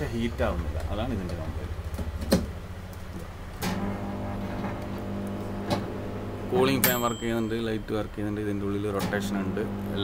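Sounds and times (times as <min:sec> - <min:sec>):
microwave oven humming: 0:03.5 - 0:10.0
microwave oven clunk: 0:03.6 - 0:06.1.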